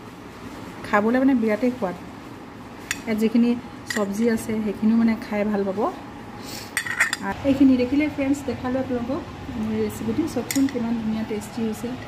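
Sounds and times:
spoon clinking on ceramic plate: 3.9 - 4.2, 6.8 - 7.3.

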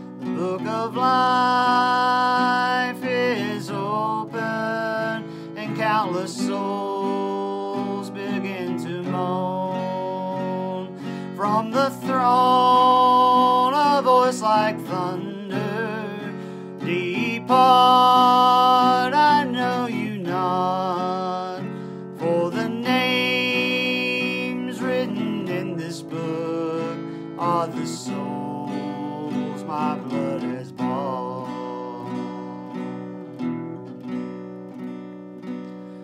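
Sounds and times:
man singing long notes: 0.0 - 33.2
acoustic guitar strumming: 0.0 - 36.0.

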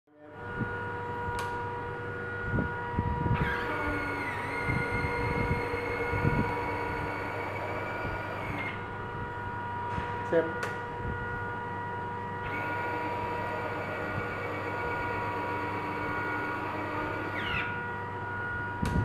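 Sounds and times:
retract motors whining: 0.1 - 10.2, 10.9 - 19.0.

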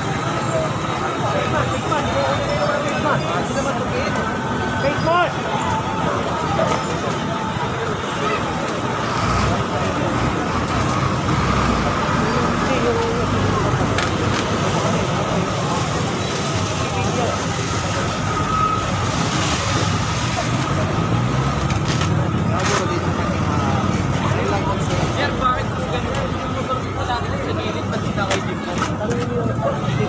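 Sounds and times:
people talking: 0.0 - 30.0
traffic noise: 0.0 - 30.0.

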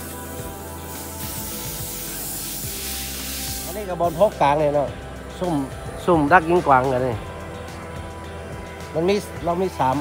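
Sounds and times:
steady hiss: 0.0 - 5.7
background music: 0.0 - 10.0.

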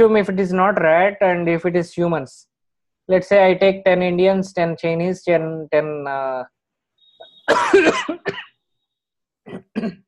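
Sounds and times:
person clearing throat: 7.5 - 8.6, 9.5 - 10.0
person coughing: 7.5 - 8.6, 9.5 - 10.0.

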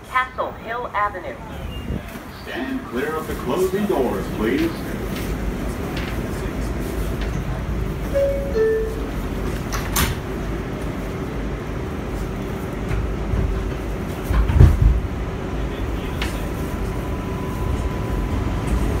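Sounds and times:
subway motor hum: 0.0 - 19.0.

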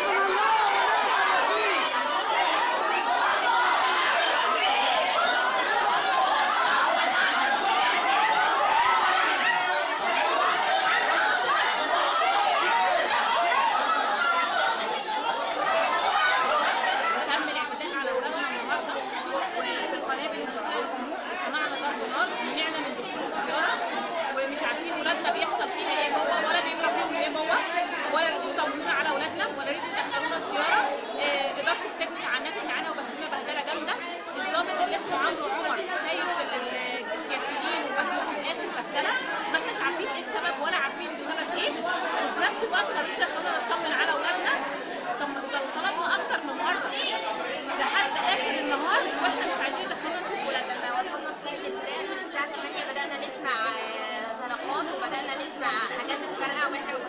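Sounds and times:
crowd babble: 0.0 - 57.0.

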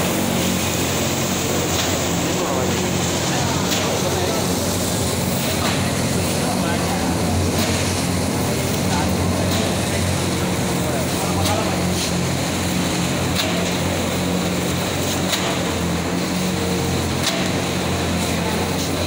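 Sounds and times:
cutting machine humming: 0.0 - 19.0.

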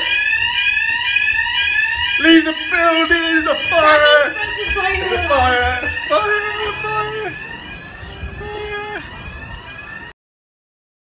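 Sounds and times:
fire alarm rising sweep: 0.0 - 10.2
voices: 2.2 - 9.2.

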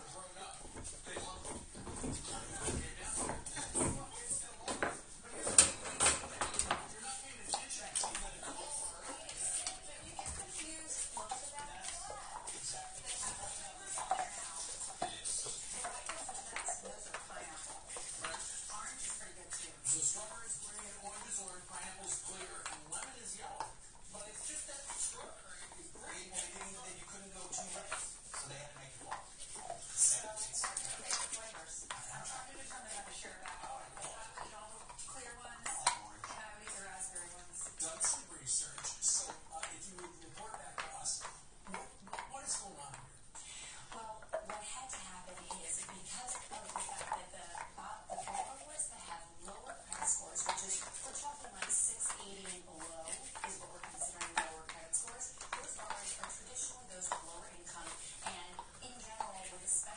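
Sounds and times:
muffled background talk: 0.0 - 59.9
muffled background voices: 0.0 - 59.9.

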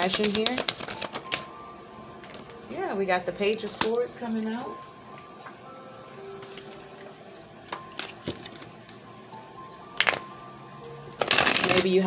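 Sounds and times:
cards rustling: 0.0 - 1.5
soft music of held tones: 0.0 - 12.0.

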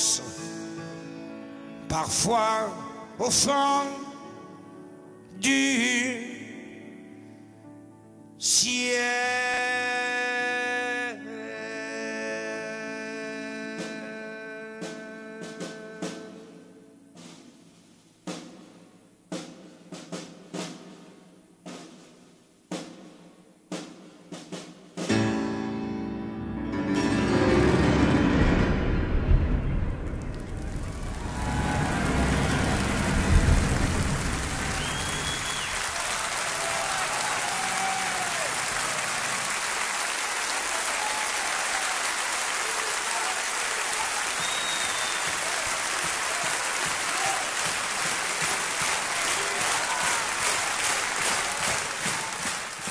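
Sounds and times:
orchestra chords with drums: 14.8 - 40.4
audience applauding: 30.0 - 52.9
shouts or whistles: 34.5 - 38.6, 40.7 - 47.6.

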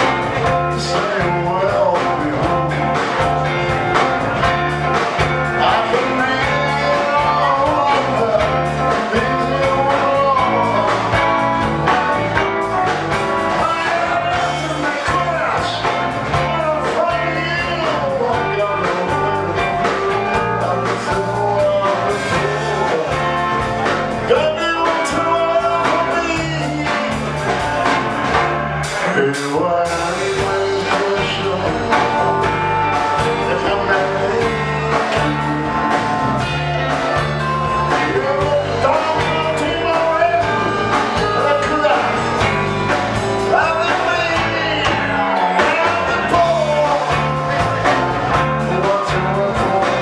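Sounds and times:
blues band playing: 0.0 - 50.0
electric guitar: 0.0 - 50.0.

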